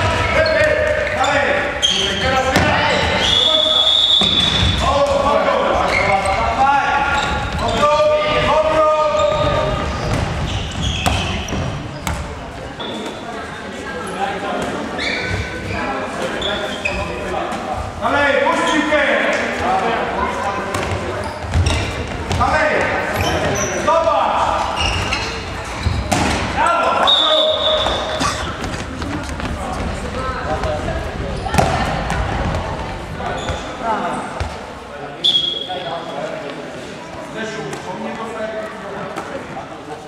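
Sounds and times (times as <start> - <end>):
ball bouncing on court floor: 9.3 - 12.3, 31.4 - 32.8.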